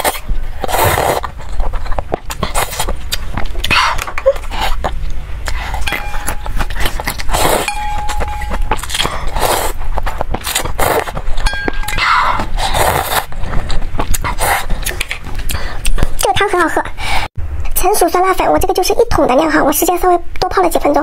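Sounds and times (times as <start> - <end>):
chopsticks clinking against metal pot: 5.9 - 9.2, 11.4 - 12.5.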